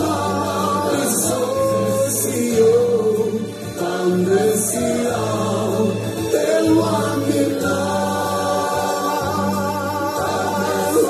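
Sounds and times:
low musical accompaniment: 0.0 - 11.0
mixed choir singing: 0.0 - 11.0.

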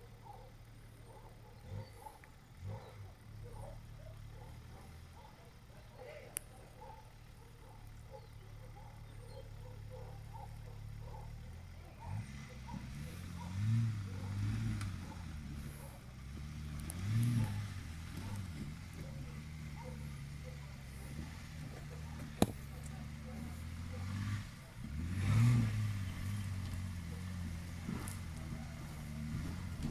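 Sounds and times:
engine revving under load: 0.0 - 29.9.

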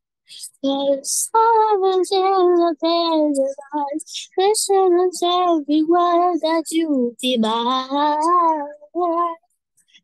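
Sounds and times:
person singing unaccompanied: 0.3 - 9.5.

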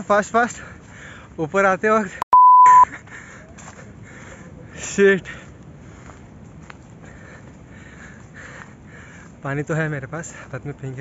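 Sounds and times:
censor bleep: 2.2 - 2.9.

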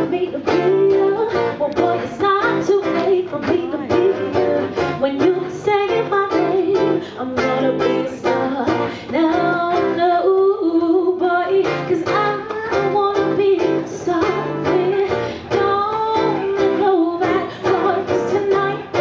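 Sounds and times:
acoustic guitar strummed: 0.0 - 19.0
woman singing: 0.0 - 19.0.

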